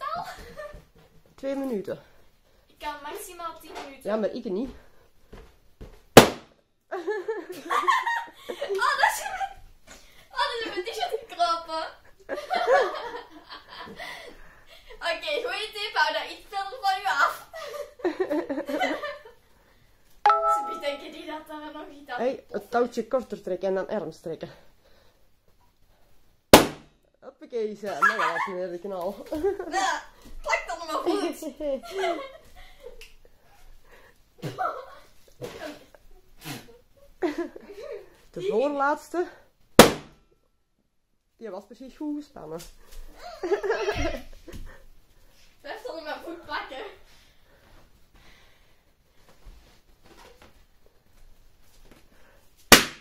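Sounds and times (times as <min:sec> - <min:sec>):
balloon bursting with loud pop: 0:06.2 - 0:06.6, 0:26.5 - 0:27.0, 0:39.8 - 0:40.2, 0:52.7 - 0:53.0.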